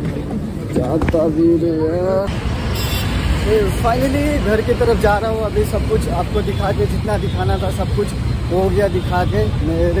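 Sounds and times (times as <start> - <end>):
road traffic rumbling: 0.0 - 10.0.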